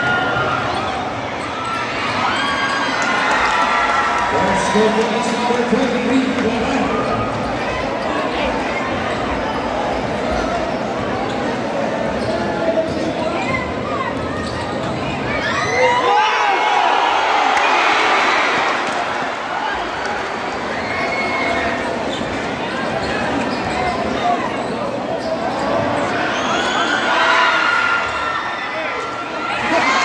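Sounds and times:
crowd chatter and shouts: 0:00.0 - 0:30.0.

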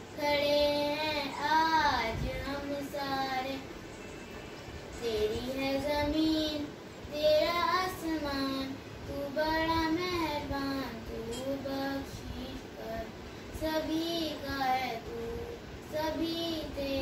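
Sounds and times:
girl singing a prayer: 0:00.1 - 0:03.8, 0:04.9 - 0:17.0.

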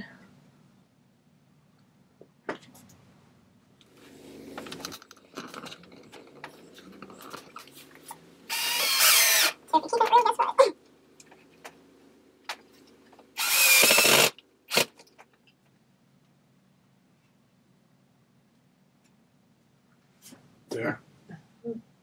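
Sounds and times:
cordless drill running: 0:08.5 - 0:09.6, 0:13.4 - 0:15.0
stuttering drill pulses: 0:08.5 - 0:09.6, 0:13.4 - 0:14.9.

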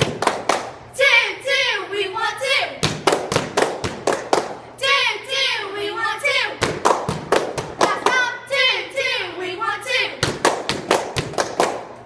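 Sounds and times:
girls chanting a cheer: 0:00.9 - 0:03.1, 0:04.5 - 0:06.8, 0:07.6 - 0:10.8
sharp hand claps: 0:10.3 - 0:11.9.

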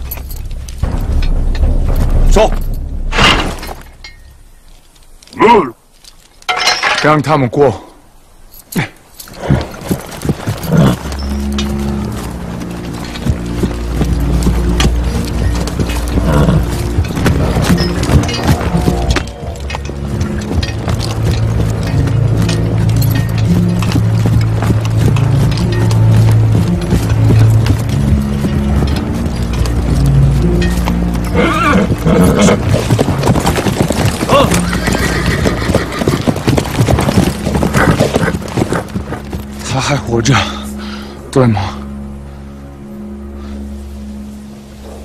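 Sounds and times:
horse hooves clip-clopping on dirt: 0:00.0 - 0:06.6, 0:08.5 - 0:40.8
horses whinnying: 0:08.8 - 0:11.8, 0:14.1 - 0:25.4, 0:31.2 - 0:39.5
low orchestral music: 0:09.5 - 0:45.0.

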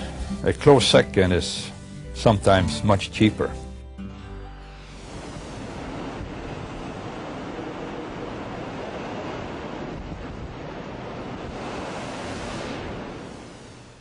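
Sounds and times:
ocean waves rushing: 0:04.9 - 0:14.0
wind: 0:05.0 - 0:14.0.

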